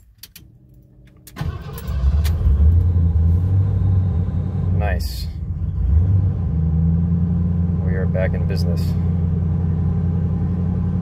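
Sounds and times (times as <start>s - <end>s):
car engine starting and idling: 0.0s - 11.0s.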